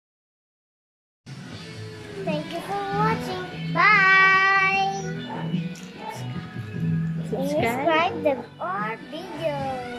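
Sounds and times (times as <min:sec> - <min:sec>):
faint background music: 0:01.3 - 0:09.9
child singing: 0:02.1 - 0:05.3, 0:07.3 - 0:09.9.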